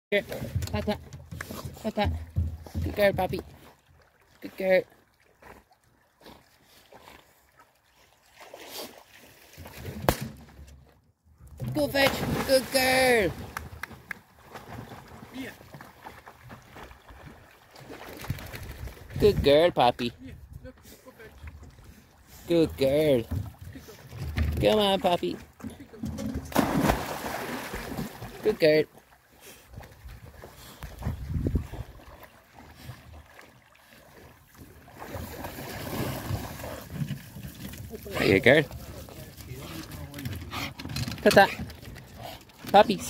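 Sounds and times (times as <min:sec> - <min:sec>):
water lapping against a jetty: 0:00.2 - 0:19.6, 0:20.4 - 0:43.0
wind rumble on microphone: 0:31.0 - 0:31.9.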